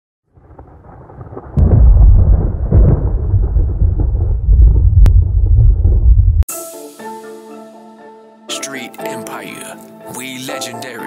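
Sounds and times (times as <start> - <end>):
sharp cracks: 0.3 - 6.2
deep thunder-like rumble: 0.3 - 6.5.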